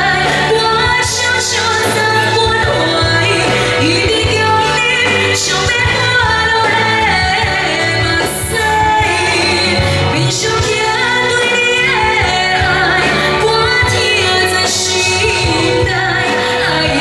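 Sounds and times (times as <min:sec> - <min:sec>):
live band playing: 0:00.0 - 0:17.0
woman singing pop song into microphone: 0:00.0 - 0:17.0.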